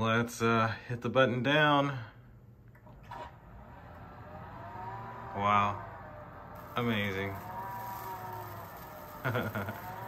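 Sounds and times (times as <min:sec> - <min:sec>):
roller shade motor humming: 0:02.8 - 0:10.0.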